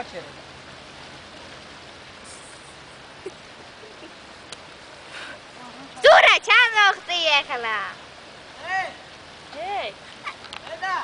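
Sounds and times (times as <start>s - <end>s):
rushing outdoor hiss: 0.0s - 11.0s
faint ticks: 9.5s - 10.8s.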